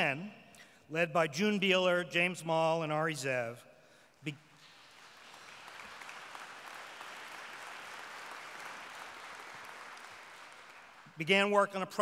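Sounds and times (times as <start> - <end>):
audience applauding: 4.6 - 11.3.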